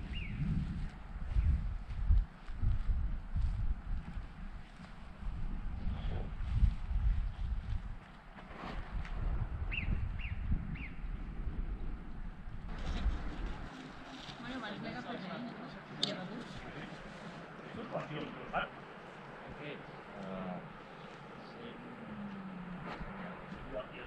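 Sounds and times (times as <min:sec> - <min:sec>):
footsteps on grass: 0:00.6 - 0:05.5
faint voices: 0:13.0 - 0:24.0.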